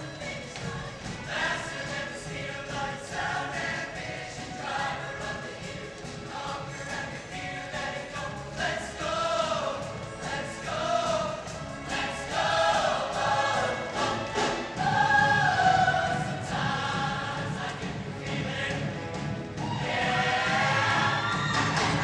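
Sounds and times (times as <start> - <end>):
choir singing in harmony: 0.0 - 22.0.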